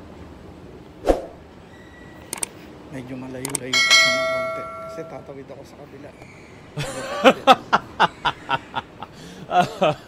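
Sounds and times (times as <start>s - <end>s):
sharp clicks: 2.3s - 2.5s, 3.4s - 3.7s
train signal chime: 3.7s - 5.4s.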